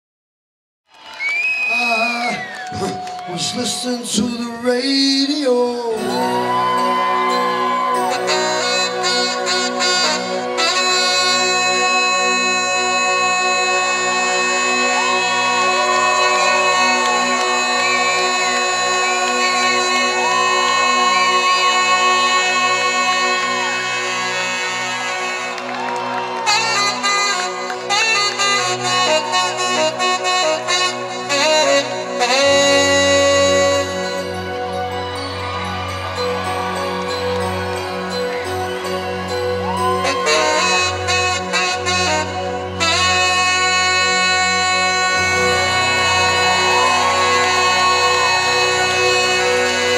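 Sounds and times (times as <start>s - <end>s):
held keyboard chord: 5.9s - 49.9s
saxophone solo: 5.9s - 49.9s.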